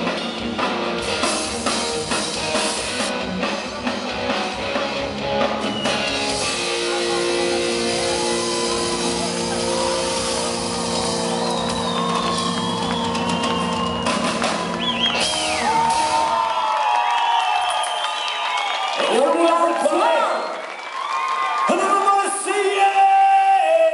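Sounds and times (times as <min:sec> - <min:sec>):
pop band holding a chord: 0:00.0 - 0:16.4
audience shouting and cheering: 0:00.0 - 0:23.9.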